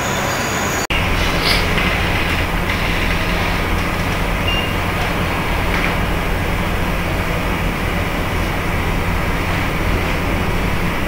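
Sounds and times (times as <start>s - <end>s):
constant background noise: 0.0s - 11.0s
low mechanical hum: 0.9s - 11.0s.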